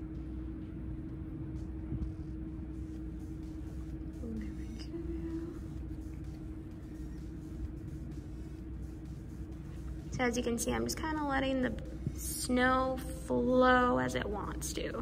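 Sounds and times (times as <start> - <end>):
faint hum: 0.0 - 15.0
low room rumble: 0.0 - 15.0.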